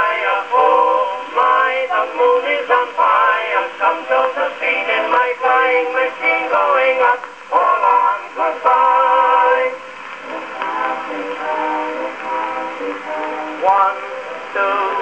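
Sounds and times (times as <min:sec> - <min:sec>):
vocal duet on gramophone: 0:00.0 - 0:15.0.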